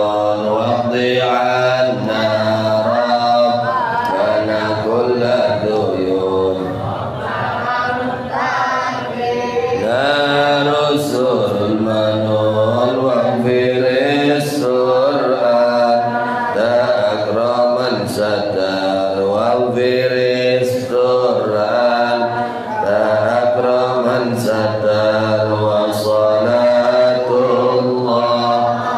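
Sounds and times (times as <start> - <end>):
man chanting into a microphone: 0.0 - 6.9, 9.8 - 28.9.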